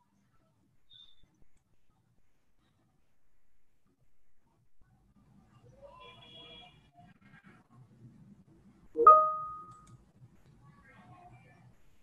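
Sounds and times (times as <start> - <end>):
electronic notification chime: 9.0 - 9.7.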